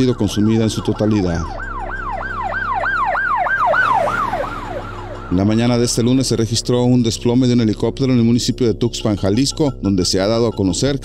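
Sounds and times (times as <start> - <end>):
electronic siren yelping: 0.0 - 6.6.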